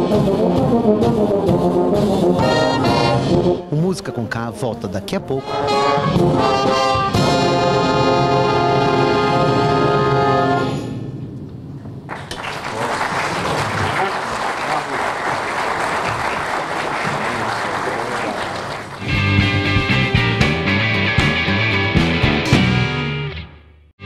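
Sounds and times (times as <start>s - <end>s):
brass section holding chord: 0.3s - 10.9s
audience applause: 12.1s - 19.2s.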